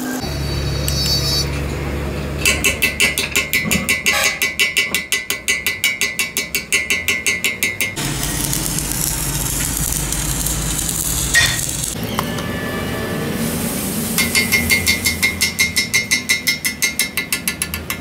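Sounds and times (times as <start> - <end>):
welding arc crackling and hissing: 8.0 - 12.0, 13.3 - 15.8.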